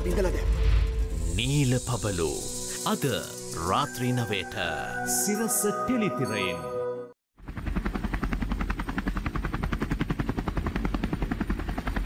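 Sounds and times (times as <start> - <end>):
low rumble: 0.0 - 2.7
helicopter rotor chopping: 7.4 - 12.0.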